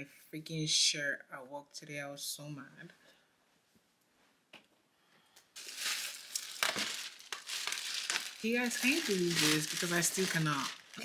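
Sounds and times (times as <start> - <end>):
plastic bag crinkling: 5.6 - 11.0
sharp plastic crackles: 5.6 - 11.0.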